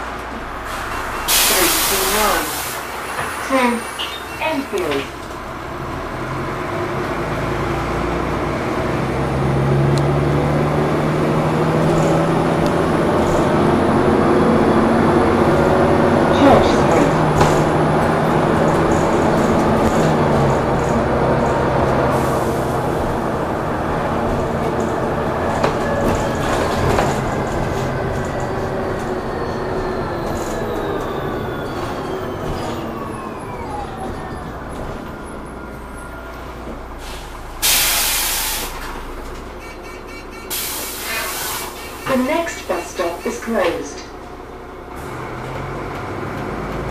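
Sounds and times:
bus engine and transmission whine: 0.0s - 46.9s
air brake hisses: 0.7s - 2.9s, 37.0s - 38.9s, 40.5s - 42.0s.

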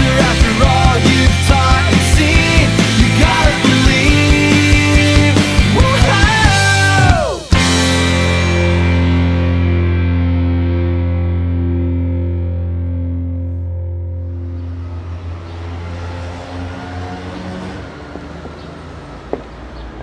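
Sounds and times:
distorted electric guitar ringing: 0.0s - 16.2s.

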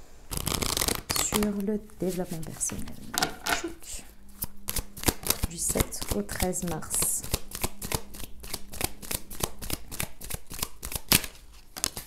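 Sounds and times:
cards being shuffled: 0.3s - 3.7s, 4.4s - 12.0s.

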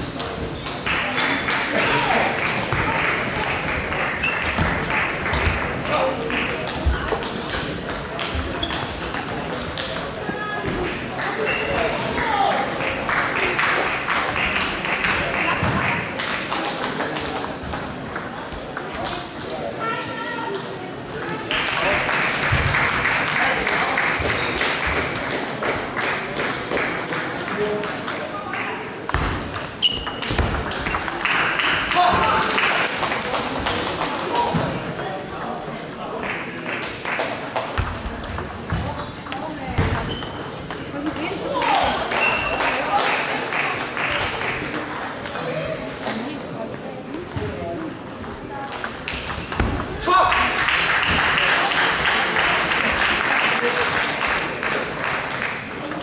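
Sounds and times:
chatter in sports hall: 0.0s - 56.0s.

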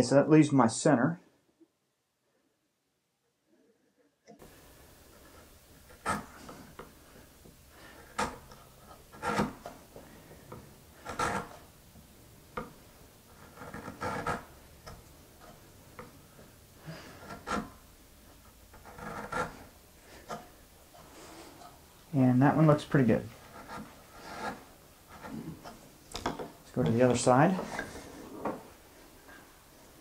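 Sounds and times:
chisel knocks and scrapes: 4.0s - 11.7s, 12.5s - 21.8s, 23.4s - 28.8s.

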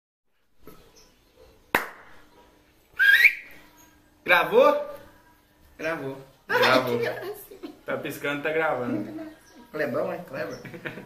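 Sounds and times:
rising whistle: 3.0s - 3.5s.

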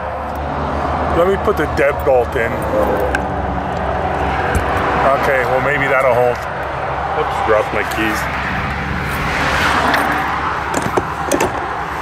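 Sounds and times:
road traffic rushing: 0.0s - 12.0s.

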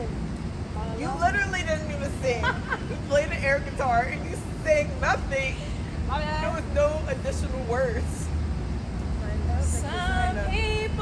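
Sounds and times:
low background rumble: 0.0s - 11.0s
women chatting and laughing: 0.8s - 7.8s, 9.2s - 11.0s.

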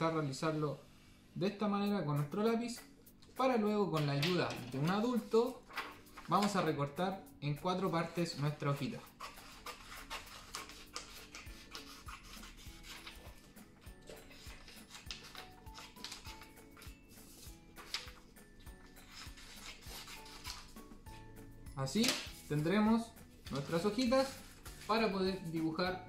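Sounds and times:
quiet background music: 0.0s - 26.0s
paper rustling: 4.0s - 6.7s, 9.1s - 20.8s, 22.0s - 25.7s
scissors snipping paper: 9.1s - 13.4s, 14.0s - 17.0s, 18.8s - 20.8s.

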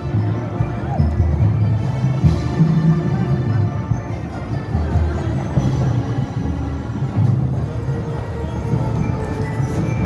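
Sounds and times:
wind band playing: 0.0s - 10.0s.

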